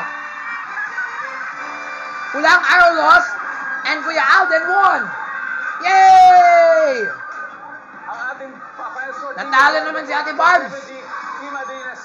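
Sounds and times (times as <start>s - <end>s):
game-show music from television: 0.0s - 12.0s.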